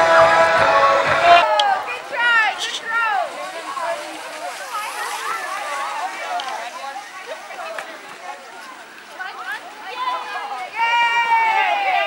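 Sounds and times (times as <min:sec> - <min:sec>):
children shouting: 0:09.8 - 0:12.0.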